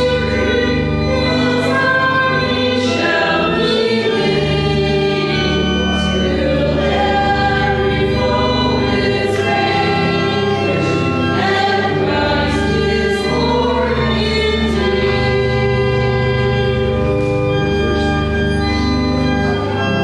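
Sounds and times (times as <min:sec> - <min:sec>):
voices singing a hymn: 0:00.0 - 0:18.5
organ chords: 0:00.0 - 0:20.0.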